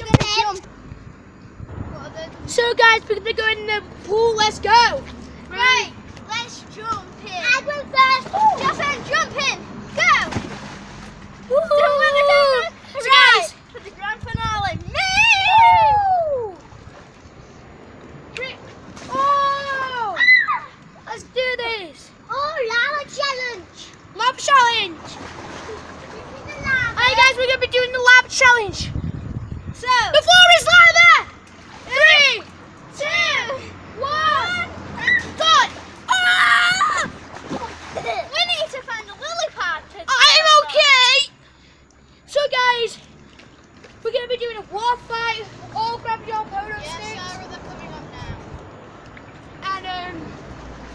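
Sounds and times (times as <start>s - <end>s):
water splashing in paddling pool: 0.0s - 28.8s, 29.8s - 50.9s
children shrieking and shouting: 7.4s - 10.5s, 11.4s - 16.7s, 18.4s - 23.7s, 29.8s - 41.4s
children squealing: 15.0s - 16.6s, 19.1s - 20.8s, 33.4s - 37.8s.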